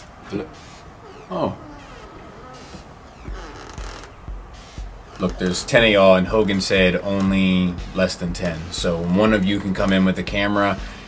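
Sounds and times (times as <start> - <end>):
faint hiss: 0.0 - 9.8
soft low thumps: 1.2 - 11.0.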